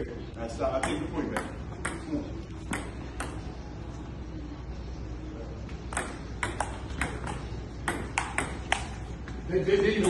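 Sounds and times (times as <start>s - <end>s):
table tennis ball clicking: 5.9s - 9.0s.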